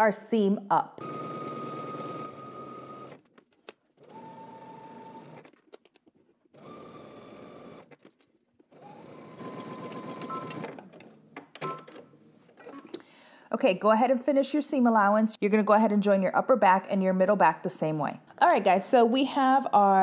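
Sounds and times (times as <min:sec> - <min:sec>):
sewing machine stitching: 0:01.0 - 0:03.3, 0:03.9 - 0:05.6, 0:06.5 - 0:13.0.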